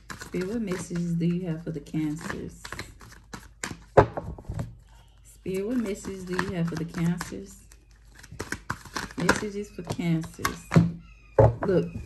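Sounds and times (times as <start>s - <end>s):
cards being shuffled: 0.0s - 1.2s, 2.1s - 4.8s, 5.8s - 10.7s.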